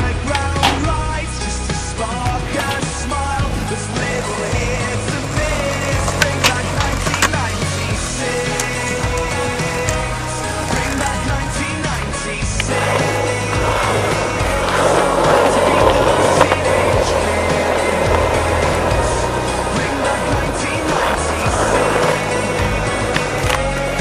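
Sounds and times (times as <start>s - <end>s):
skateboard clacks: 0.0s - 1.2s, 2.0s - 24.0s
skateboard wheels rolling on asphalt: 0.0s - 24.0s
song with steady beat: 0.0s - 24.0s.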